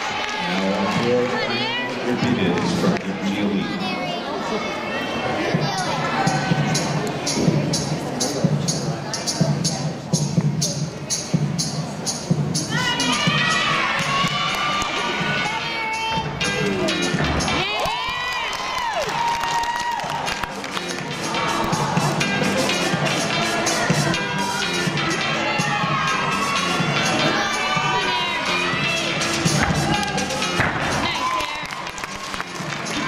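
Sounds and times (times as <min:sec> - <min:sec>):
crowd cheering and shouting: 0:00.0 - 0:09.4, 0:12.6 - 0:33.0
music with steady beat: 0:05.8 - 0:17.7, 0:20.1 - 0:31.3.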